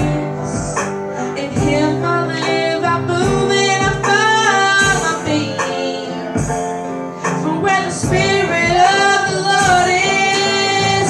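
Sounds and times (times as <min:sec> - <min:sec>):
person singing worship music: 0:00.0 - 0:11.0.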